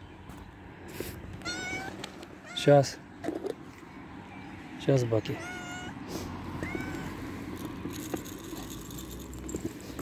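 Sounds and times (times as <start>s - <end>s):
cat meowing: 1.4s - 2.7s, 5.2s - 7.2s.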